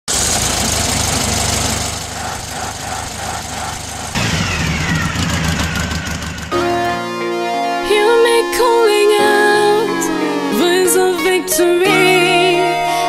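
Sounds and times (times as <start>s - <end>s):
old car engine running: 0.0s - 7.0s
hum with falling whine: 1.9s - 6.7s.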